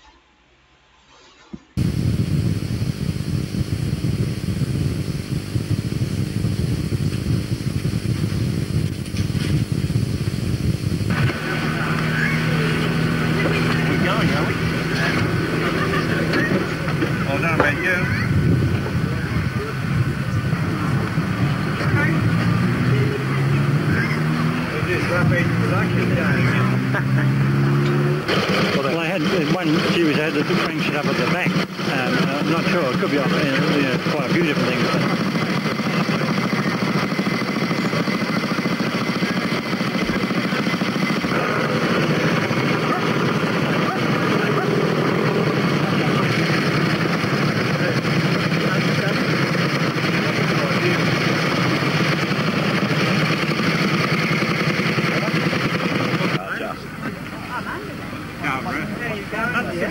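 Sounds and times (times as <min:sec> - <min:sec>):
low rumbling noise: 0:01.8 - 0:59.9
motorcycle engine revving: 0:01.8 - 0:59.9
people talking: 0:11.1 - 0:27.6, 0:28.3 - 0:59.9.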